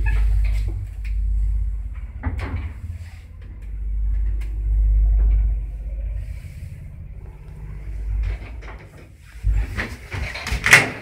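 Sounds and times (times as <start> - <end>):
faint steady hum: 0.0 - 10.4
passenger lift rumbling: 0.0 - 11.0.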